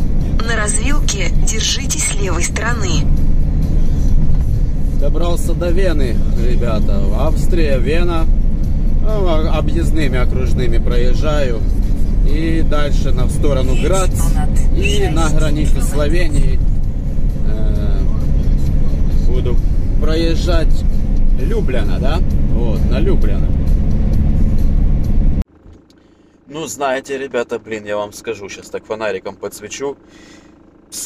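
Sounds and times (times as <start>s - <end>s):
van engine and tyre rumble: 0.0s - 31.0s.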